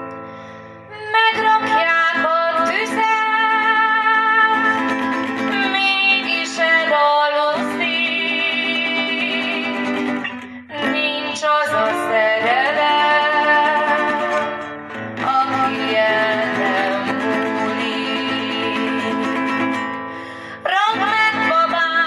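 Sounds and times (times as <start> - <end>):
folk tune on plucked strings: 0.0 - 22.0.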